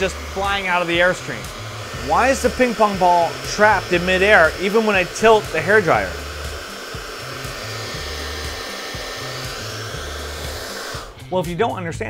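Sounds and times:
hair dryer blowing: 0:00.0 - 0:11.5.

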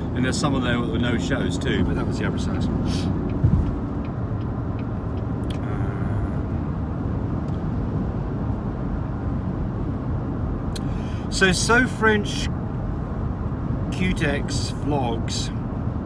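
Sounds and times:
car cabin rumble: 0:00.0 - 0:09.2.

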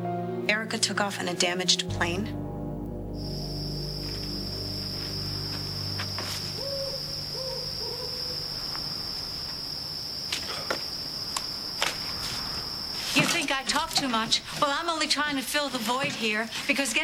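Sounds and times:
sustained music chord: 0:00.0 - 0:10.0
cricket trill: 0:00.0 - 0:17.0.

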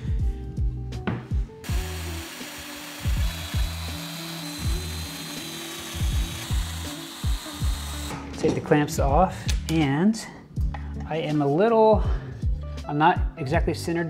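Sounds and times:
background music with steady beat: 0:00.0 - 0:14.0
joiner cutting plywood: 0:01.7 - 0:08.1.

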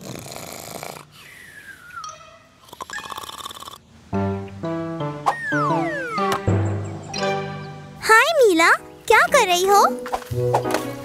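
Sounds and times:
cartoon snoring: 0:00.0 - 0:01.5, 0:02.6 - 0:03.8
music with held notes: 0:04.2 - 0:08.0.

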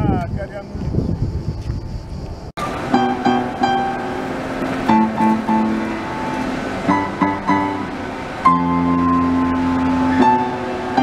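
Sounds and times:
upright piano chords: 0:02.6 - 0:11.0.

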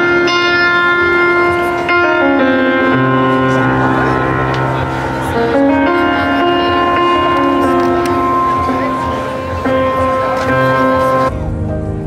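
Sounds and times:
piano playing slow chords: 0:00.0 - 0:12.0.

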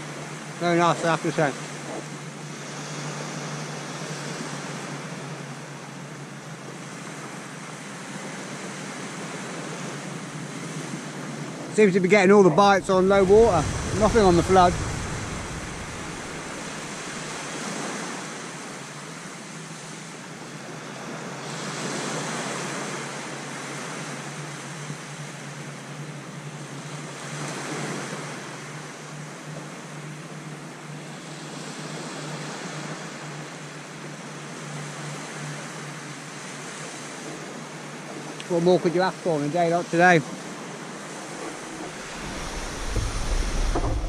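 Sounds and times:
waves breaking on a beach: 0:00.0 - 0:44.0.

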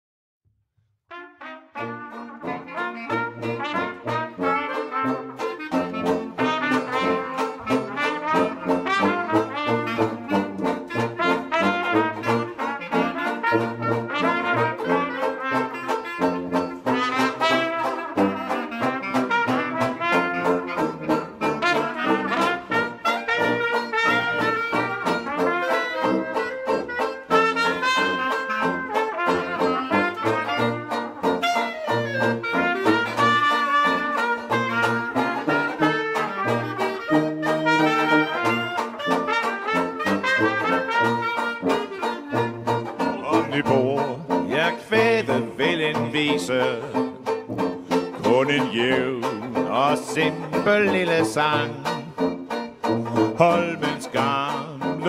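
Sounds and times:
jazz band playing: 0:01.1 - 0:55.0
strummed banjo: 0:01.1 - 0:55.0
tuba bass notes: 0:01.1 - 0:55.0.

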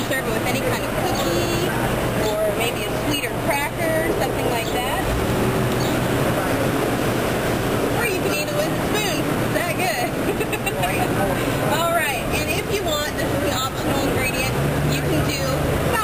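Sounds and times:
low engine hum: 0:00.0 - 0:16.0
people's voices: 0:00.0 - 0:16.0
traffic: 0:00.0 - 0:16.0.

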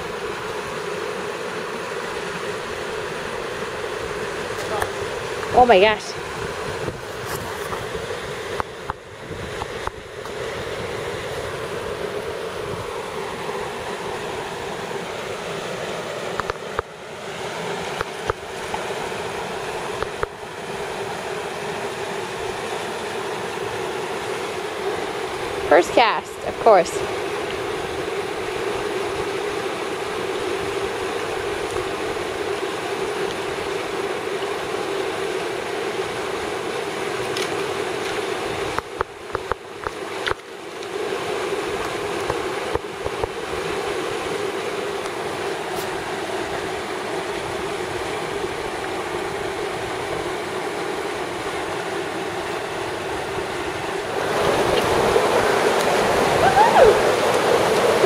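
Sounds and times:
river water rushing: 0:00.0 - 0:58.0.

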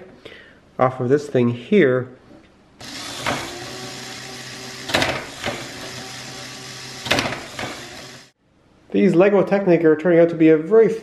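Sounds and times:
electric motor whirring: 0:02.8 - 0:08.4.

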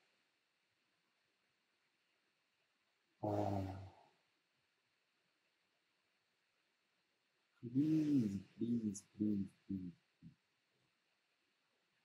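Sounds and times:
man saying uh: 0:03.2 - 0:03.9, 0:07.6 - 0:09.9.

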